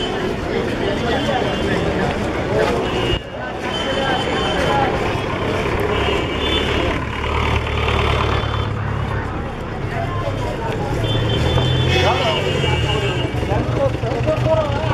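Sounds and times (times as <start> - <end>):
passers-by talking: 0.0 - 14.9.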